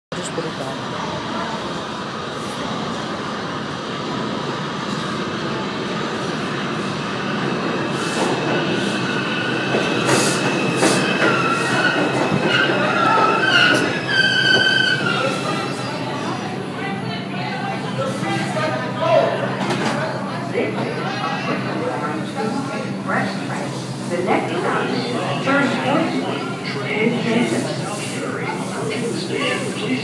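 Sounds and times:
subway train rumble: 0.1s - 30.0s
train clacking over rails: 0.2s - 18.8s
high brake squeal: 10.9s - 15.8s.

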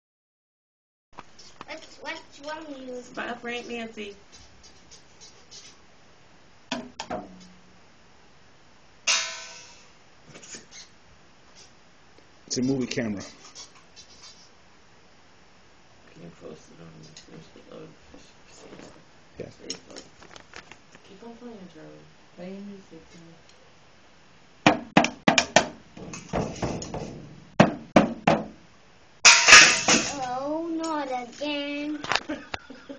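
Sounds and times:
child hitting toy drum kit: 9.1s - 9.8s, 24.6s - 28.6s, 29.3s - 30.3s
toy drum hits: 9.1s - 9.8s, 29.3s - 30.3s.

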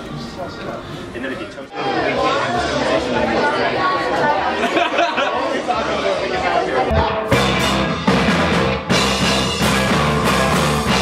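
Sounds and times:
people chattering: 0.0s - 8.1s.

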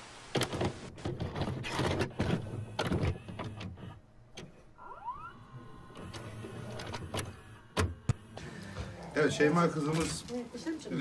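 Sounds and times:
tape motor whine and hum: 1.6s - 9.8s.

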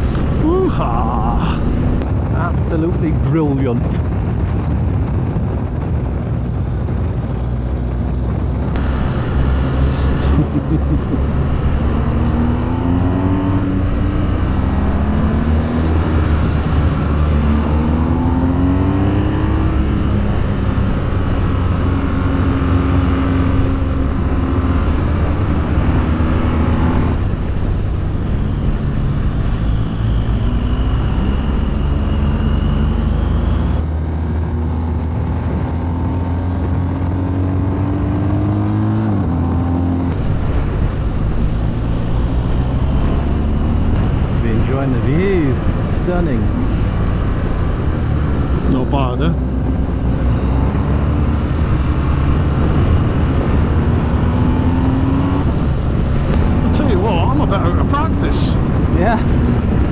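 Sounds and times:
wind rush: 0.0s - 59.9s
motorcycle engine accelerating: 4.3s - 59.9s.

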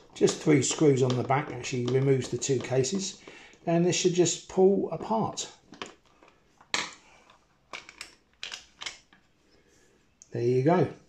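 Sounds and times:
plastic case clicks: 0.2s - 3.3s.

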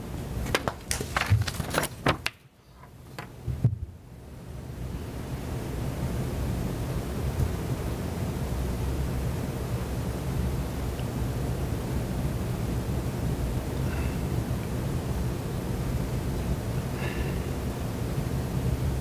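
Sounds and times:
room hiss: 0.0s - 19.0s.

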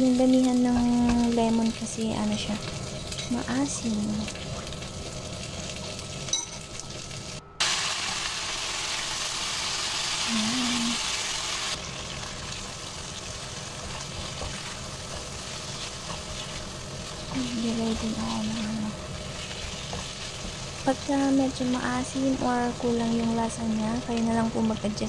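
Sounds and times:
food sizzling in oil: 0.0s - 25.0s
spatula stirring in a pan: 12.0s - 22.4s.

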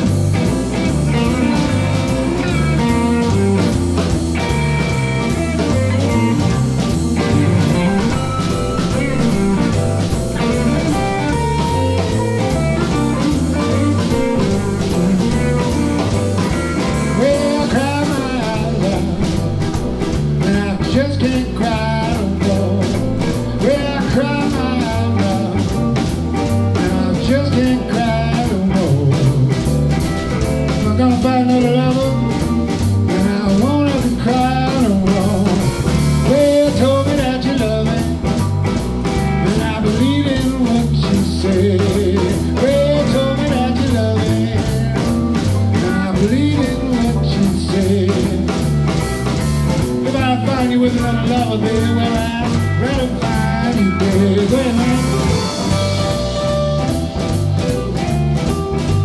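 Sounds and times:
blues band playing: 0.0s - 59.0s
person singing: 7.2s - 19.7s, 20.4s - 26.0s, 26.7s - 29.7s, 30.7s - 38.4s, 39.2s - 48.9s, 50.0s - 57.0s.

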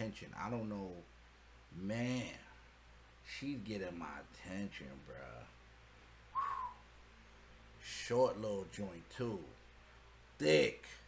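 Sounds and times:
man whistling short note: 6.3s - 6.9s.

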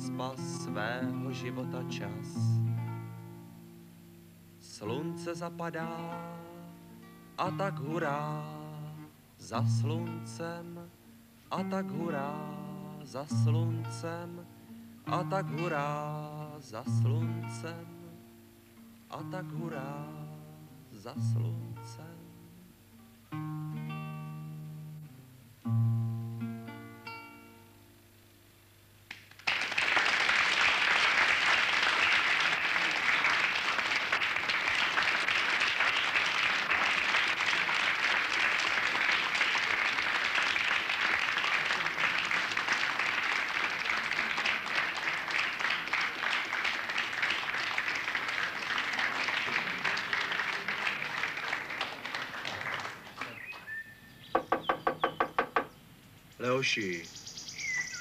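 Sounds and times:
acoustic guitar chords ringing: 0.0s - 29.0s
audience applause: 29.1s - 53.7s.

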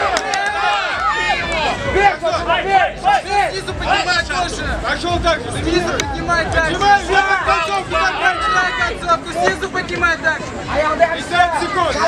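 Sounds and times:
crowd chatter: 0.0s - 12.0s
men talking and calling out: 0.0s - 12.0s.

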